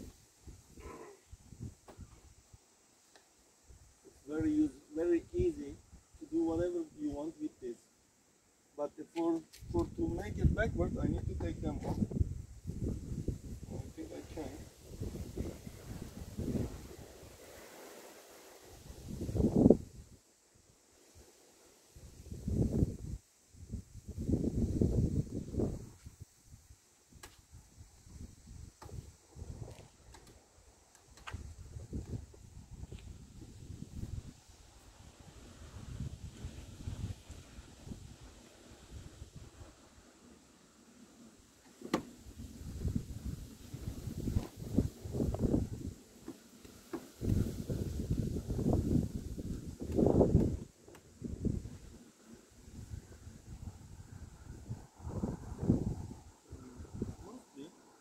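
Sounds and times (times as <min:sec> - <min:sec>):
wind buffeting microphone: 0:09.6 - 0:17.3, 0:18.8 - 0:20.1, 0:22.0 - 0:26.7, 0:31.3 - 0:39.7, 0:42.2 - 0:46.0, 0:47.1 - 0:52.0, 0:52.6 - 0:57.3
clicks and knocks of seat fittings: 0:41.6 - 0:42.1.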